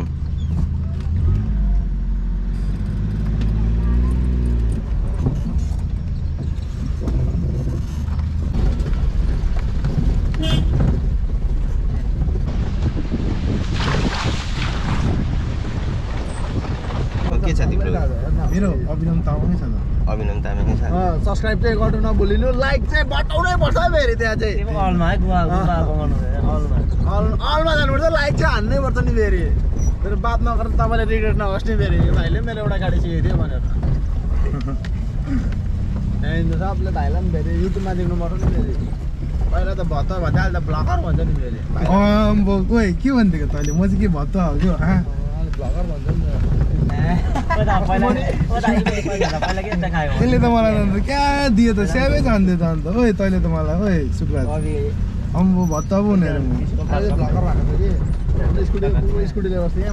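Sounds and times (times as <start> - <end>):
car engine and road rumble: 0.0 - 59.9
wind buffeting microphone: 3.6 - 59.9
rush of noise: 10.8 - 18.4.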